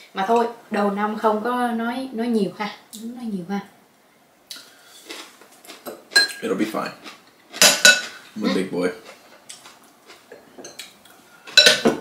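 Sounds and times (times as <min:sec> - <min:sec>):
utensils clinking on ceramic dishes: 0:07.6 - 0:08.3, 0:11.5 - 0:12.0.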